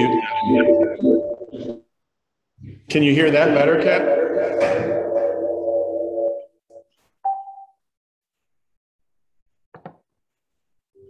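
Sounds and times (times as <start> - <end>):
audio feedback ringing: 3.0 - 7.7.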